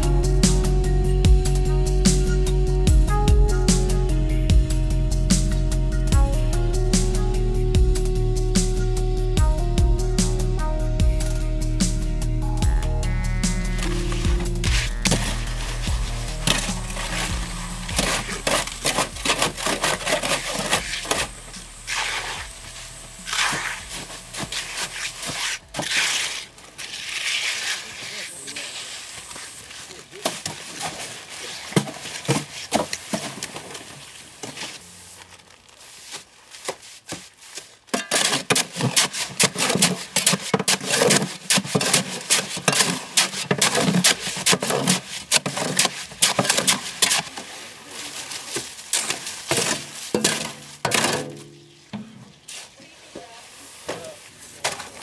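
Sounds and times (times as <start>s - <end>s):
background music: 0.0s - 26.5s
trowel scraping wet concrete: 13.5s - 33.7s, 36.0s - 51.7s
shovels scraping concrete mix: 13.7s - 51.7s, 52.4s - 55.0s.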